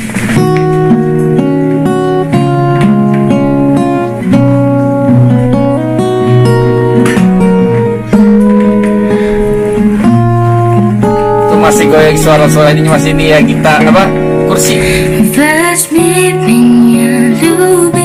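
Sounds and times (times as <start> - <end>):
acoustic guitars strummed and picked: 0.0 - 18.0.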